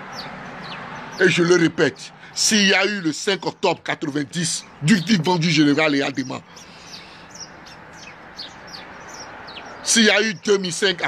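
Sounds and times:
outdoor background noise: 0.0 - 11.0
small birds chirping: 0.0 - 11.0.

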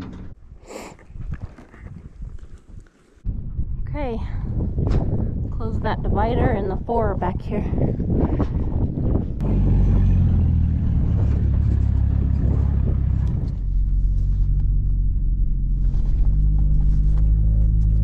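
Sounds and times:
vehicle engine rumbling: 8.5 - 18.0
clatter: 9.4 - 18.0.

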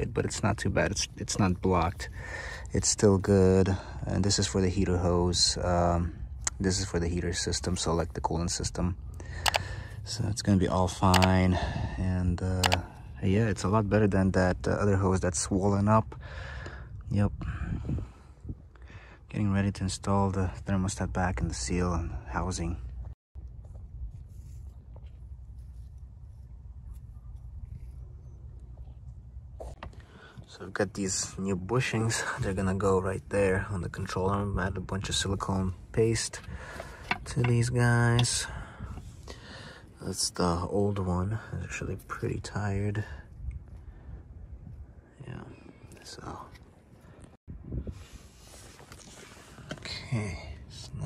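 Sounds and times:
steady low rumble: 0.0 - 45.2
light clicks of metal parts: 9.2 - 9.8, 36.2 - 39.0.

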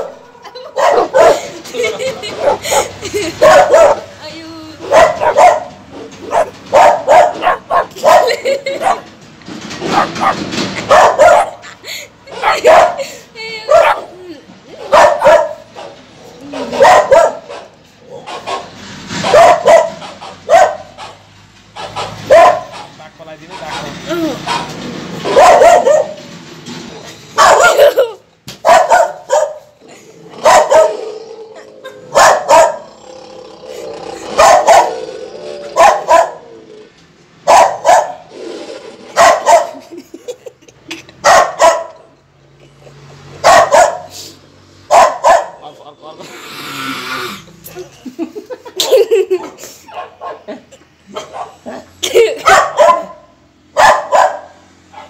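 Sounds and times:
dog barking: 0.0 - 1.5, 2.4 - 4.1, 4.8 - 9.1, 9.9 - 11.6, 12.4 - 13.0, 13.7 - 14.1, 14.8 - 16.0, 16.6 - 21.2, 21.8 - 22.9, 24.4 - 26.3, 27.4 - 29.7, 30.4 - 31.0, 32.1 - 32.9, 34.3 - 35.0, 35.8 - 36.5, 37.4 - 38.3, 39.1 - 39.8, 41.2 - 42.0, 43.4 - 44.2, 44.9 - 45.6, 49.9 - 50.5, 51.1 - 55.0.

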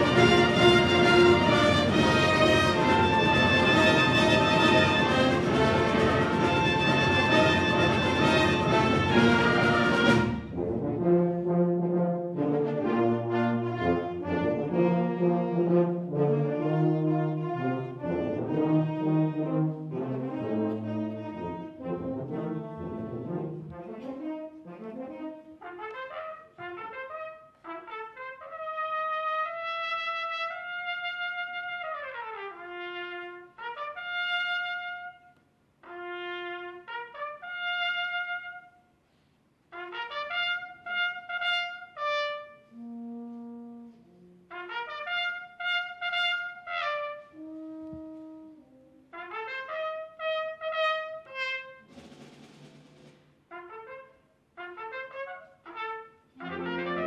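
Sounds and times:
solo trumpet melody: 0.0 - 39.0, 39.7 - 52.0, 53.5 - 57.0
quiet concert band accompaniment: 0.0 - 57.0.

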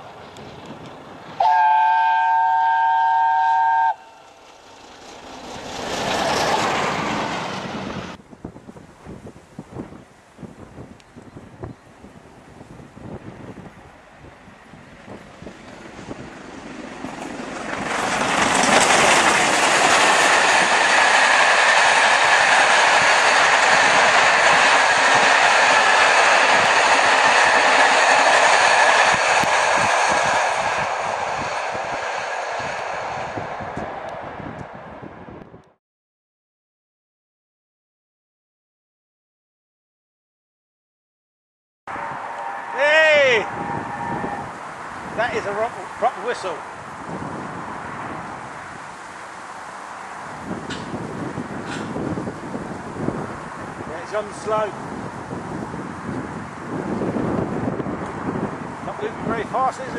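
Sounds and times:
steam train passing: 0.0 - 35.4, 41.9 - 59.9
steam locomotive whistle: 1.4 - 4.3, 41.9 - 44.6.

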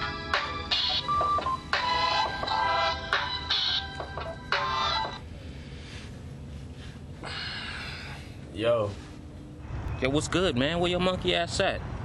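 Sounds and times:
phone ringtone melody: 0.0 - 5.2.

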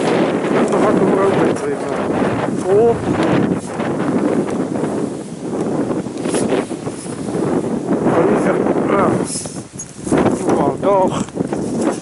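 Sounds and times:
rustling grass and leaves: 0.0 - 12.0
wind buffeting microphone: 0.0 - 12.0.

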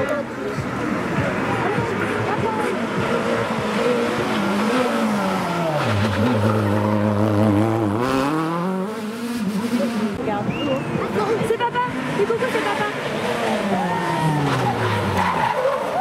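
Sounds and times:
rally car engine revving: 0.0 - 16.0.

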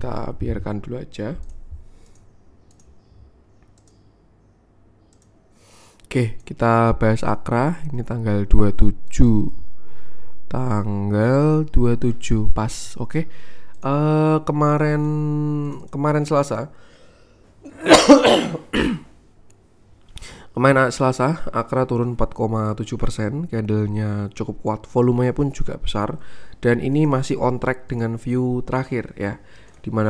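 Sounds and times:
low steady hum: 0.0 - 30.0
computer mouse clicks: 1.4 - 4.1, 5.0 - 6.5
man coughing: 17.6 - 19.1.

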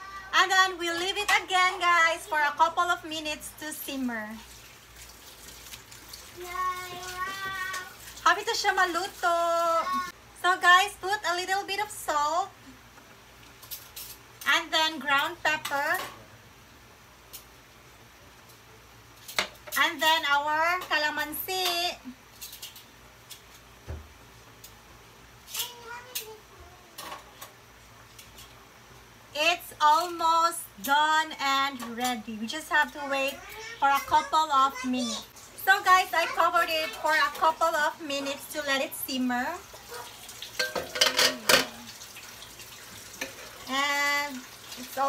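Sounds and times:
metal pot lid clanking: 40.6 - 41.7.

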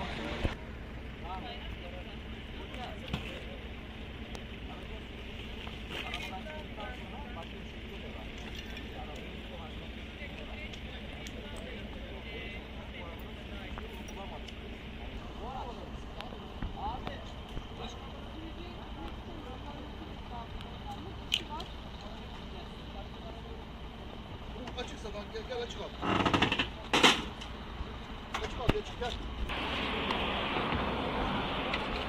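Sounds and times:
people talking in background: 0.0 - 30.2.

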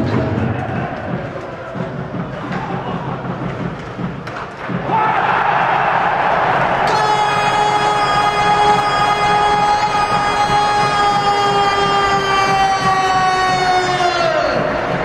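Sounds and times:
crowd noise: 0.0 - 15.0.

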